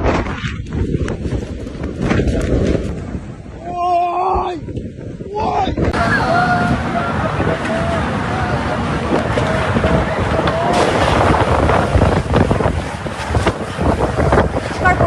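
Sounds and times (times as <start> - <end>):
wind gusting on microphone: 0.0 - 15.0.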